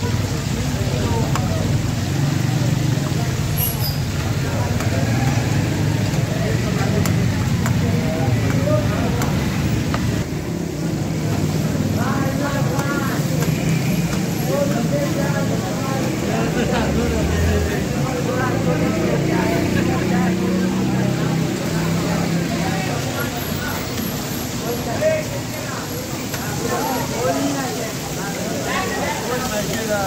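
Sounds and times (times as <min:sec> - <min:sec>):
oil sizzling and bubbling: 0:00.0 - 0:30.0
street traffic: 0:00.0 - 0:30.0.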